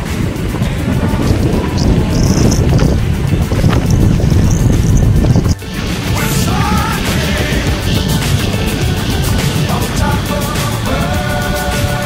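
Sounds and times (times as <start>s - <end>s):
music: 0.0s - 12.0s
wind buffeting microphone: 0.0s - 12.0s.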